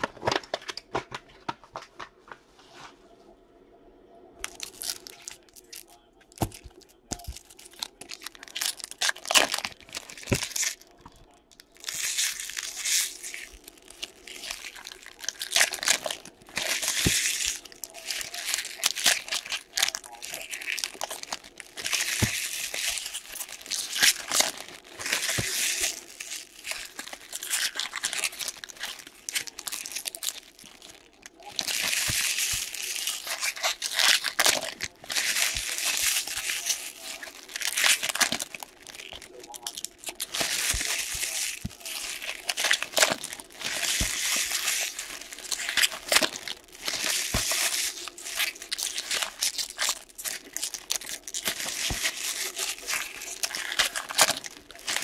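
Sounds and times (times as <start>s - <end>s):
foil wrappers tearing and crinkling: 0.0s - 1.0s, 4.4s - 55.0s.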